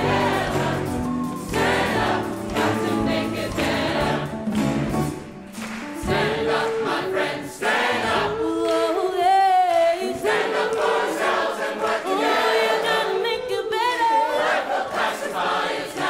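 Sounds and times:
mixed choir singing: 0.0s - 4.9s, 6.0s - 16.0s.

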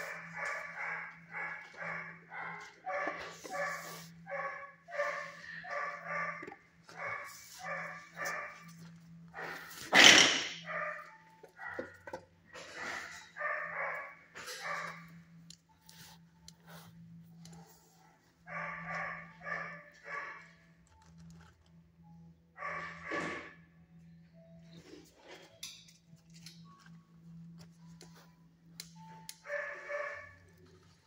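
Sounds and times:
dog barking: 0.0s - 15.2s, 17.4s - 20.6s, 22.6s - 23.5s, 29.4s - 30.6s.

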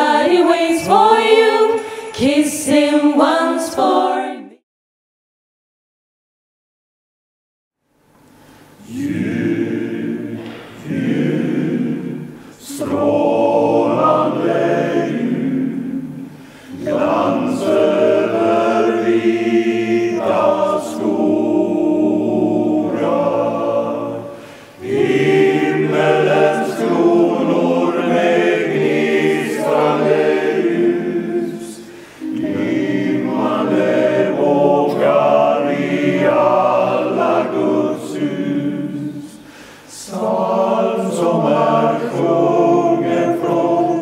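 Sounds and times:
men's choir singing: 0.0s - 4.6s, 8.8s - 44.0s.

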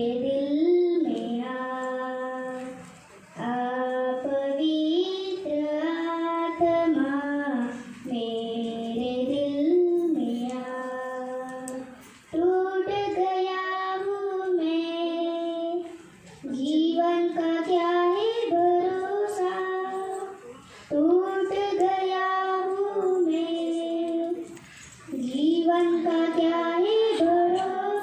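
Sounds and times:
girl singing into a microphone: 0.0s - 28.0s.

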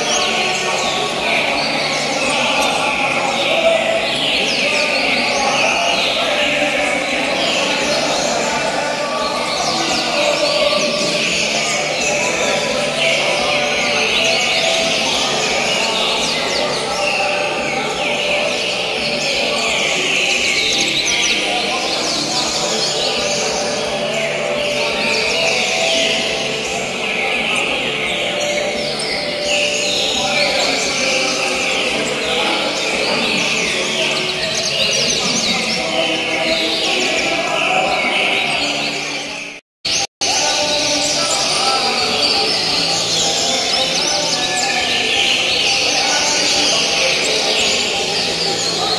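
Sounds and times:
birds singing and chirping: 0.0s - 48.9s
murmur of people: 0.0s - 48.9s.

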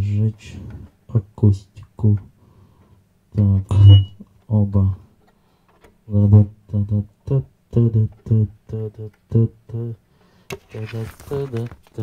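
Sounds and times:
man repeating syllables: 3.3s - 5.0s, 6.1s - 10.0s.

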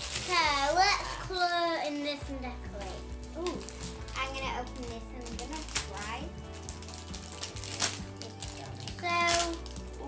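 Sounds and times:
plastic packaging crinkling: 0.0s - 10.0s
child speaking: 0.2s - 6.3s, 8.2s - 9.6s.

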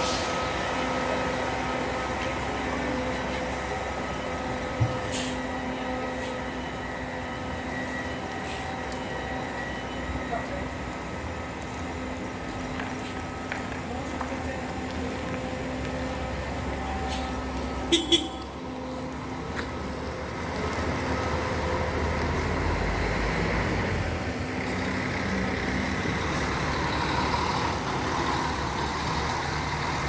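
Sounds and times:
bus engine running: 0.0s - 30.0s.

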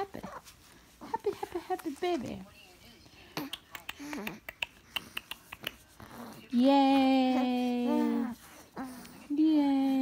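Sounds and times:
mouth clicks and smacks: 3.4s - 6.0s.

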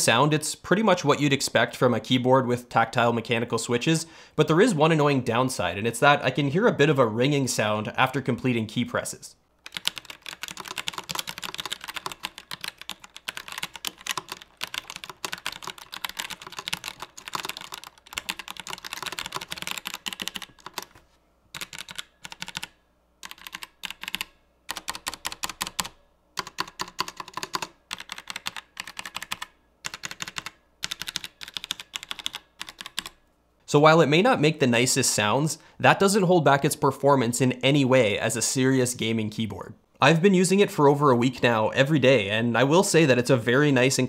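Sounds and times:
mechanical keyboard typing: 9.6s - 33.2s.

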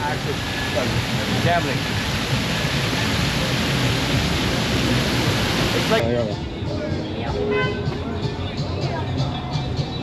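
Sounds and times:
waterfall splashing into pool: 0.0s - 6.0s.

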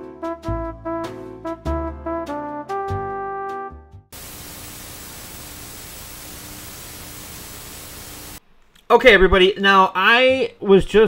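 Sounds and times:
television static hiss: 4.2s - 8.4s.

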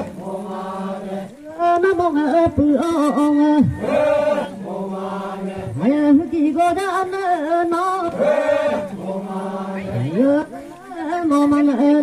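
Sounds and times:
person chanting prayer: 1.3s - 4.6s.

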